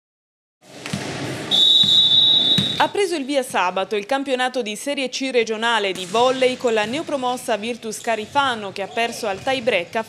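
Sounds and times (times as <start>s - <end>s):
referee's whistle blast: 1.5s - 2.9s
volleyball bouncing on wooden floor: 1.8s - 2.8s.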